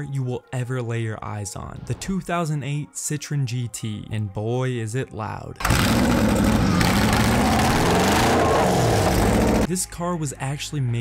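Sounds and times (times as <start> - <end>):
loud car engine running: 5.6 - 9.7.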